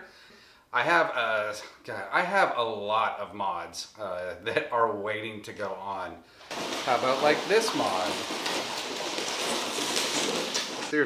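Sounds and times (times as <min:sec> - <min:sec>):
cardboard box scraping on floor: 0:06.4 - 0:11.0.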